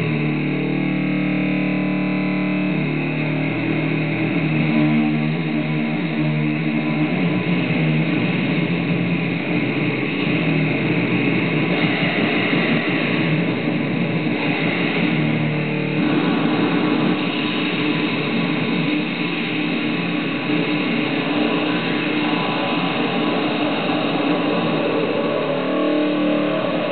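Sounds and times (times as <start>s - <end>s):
distorted live rock music: 0.0s - 26.9s.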